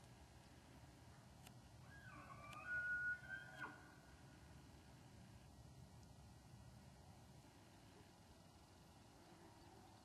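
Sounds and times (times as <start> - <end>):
distant elk bugling: 1.8 - 4.1.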